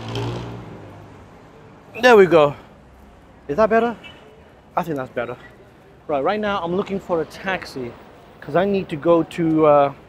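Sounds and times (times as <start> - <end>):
faint street noise: 0.0 - 10.0.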